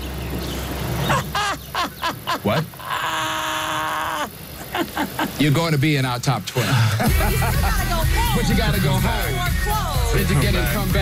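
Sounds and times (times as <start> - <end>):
high cry of surprise: 1.1 - 4.5.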